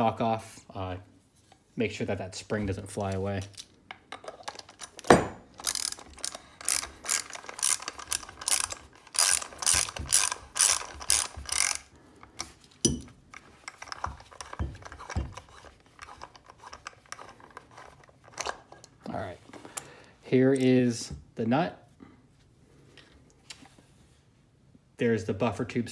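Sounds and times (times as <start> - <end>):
ratchet wrench clicking: 4.6 - 11.9.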